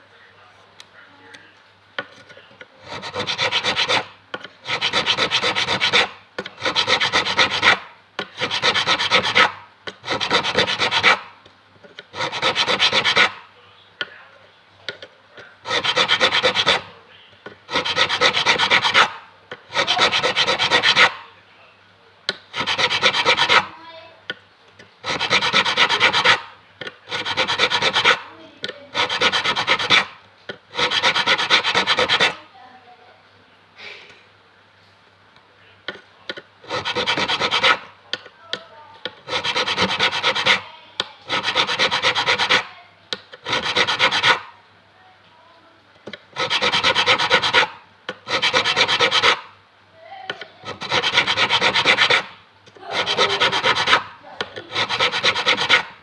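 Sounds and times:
file rasping on metal fret: 2.8s - 11.3s, 12.0s - 13.4s, 15.6s - 16.9s, 17.7s - 21.2s, 22.5s - 23.8s, 25.0s - 28.3s, 28.9s - 32.4s, 36.6s - 37.9s, 39.2s - 42.7s, 43.3s - 44.5s, 46.1s - 49.5s, 50.6s - 56.0s.

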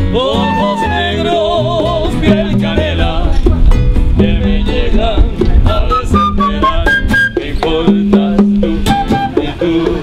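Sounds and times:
men singing: 0.0s - 10.0s
nylon-string guitar: 0.0s - 10.0s
flute melody: 0.2s - 2.1s, 5.7s - 9.9s
bongos: 0.3s - 10.0s.

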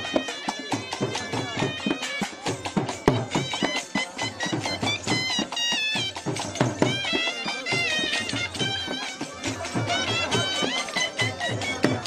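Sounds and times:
dhol drum strokes: 0.0s - 12.0s
shrill reed pipe melody: 0.0s - 12.0s.

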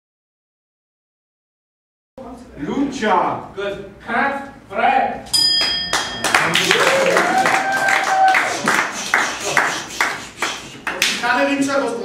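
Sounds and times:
short bell-like ring: 5.3s - 6.4s
audience clapping: 5.6s - 11.4s.

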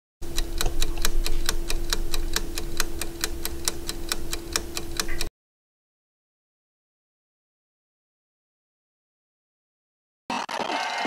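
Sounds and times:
rapid timer ticks: 0.2s - 5.3s
steady low hum: 0.2s - 5.3s.

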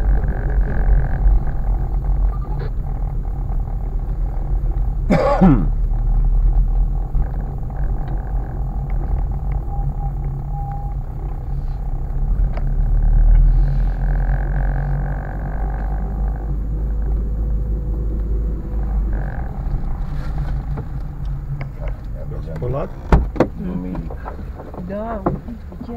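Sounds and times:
car engine and tyres rumbling: 0.0s - 25.9s.

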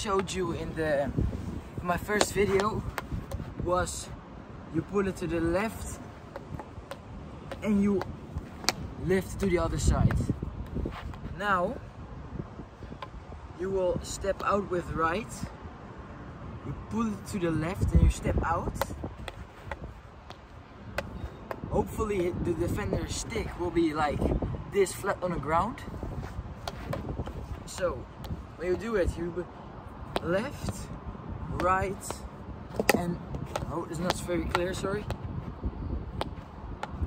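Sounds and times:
hockey stick tapping ball: 32.8s - 35.2s.

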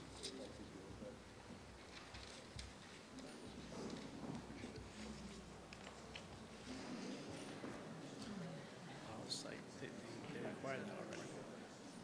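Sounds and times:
faint indistinct murmuring: 0.0s - 12.0s
small rustles or clicks: 1.8s - 6.4s.

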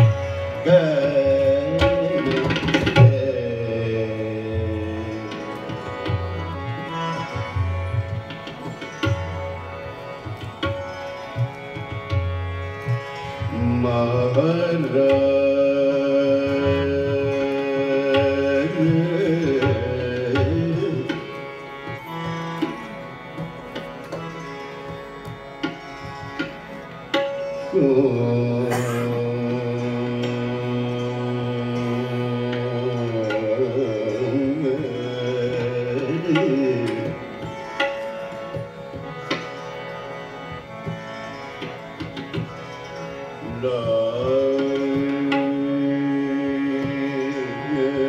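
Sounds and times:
harmonium melody: 0.0s - 48.0s
tabla playing: 0.0s - 48.0s
man singing long note: 27.8s - 37.1s.

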